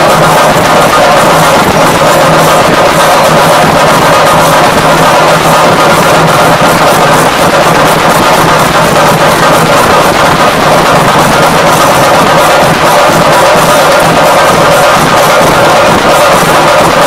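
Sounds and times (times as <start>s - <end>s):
drums beaten with sticks: 0.0s - 17.0s.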